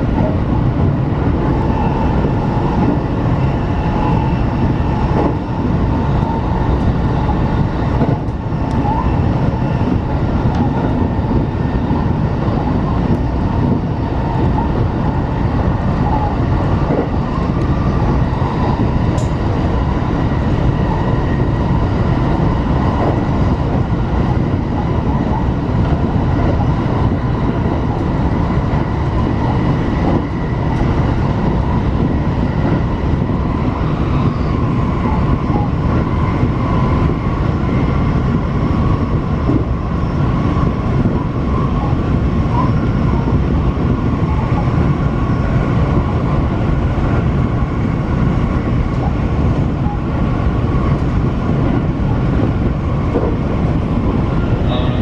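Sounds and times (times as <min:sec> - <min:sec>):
train wheels rumbling on rail: 0:00.0 - 0:55.0.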